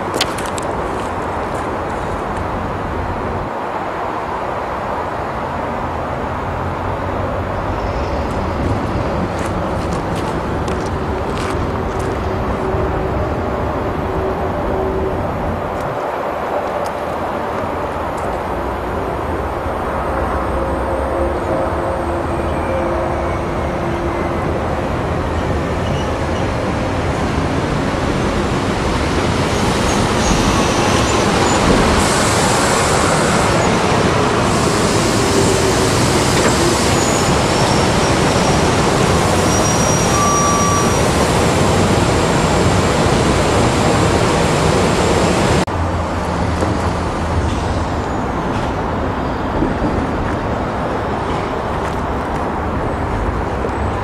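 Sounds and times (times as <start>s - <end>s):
electric train passing on rails: 0.0s - 54.0s.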